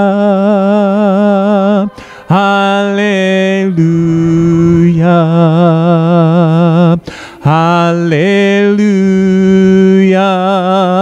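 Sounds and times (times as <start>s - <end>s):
congregation singing a hymn: 0.0s - 11.0s
short breath: 1.9s - 2.3s, 7.0s - 7.4s.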